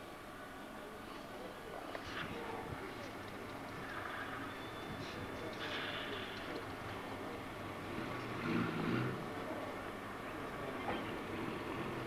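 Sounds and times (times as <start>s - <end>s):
vehicle engine rumbling: 2.0s - 12.0s.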